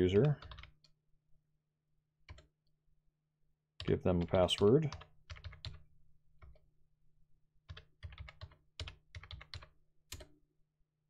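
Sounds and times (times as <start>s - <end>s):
keyboard typing: 0.2s - 0.9s, 2.3s - 2.5s, 3.8s - 5.8s, 6.4s - 6.6s, 7.7s - 10.4s.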